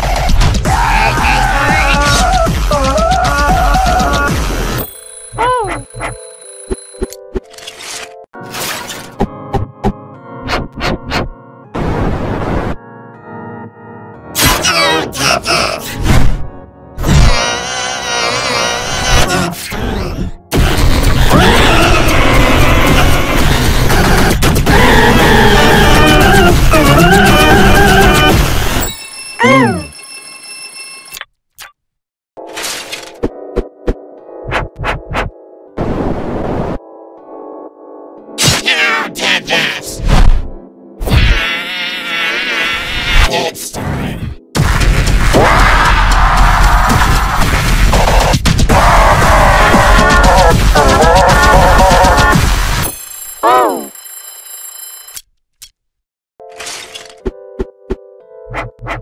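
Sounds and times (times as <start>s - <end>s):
cartoon alarm clock ringing: 4.8s - 7.1s, 52.9s - 55.2s.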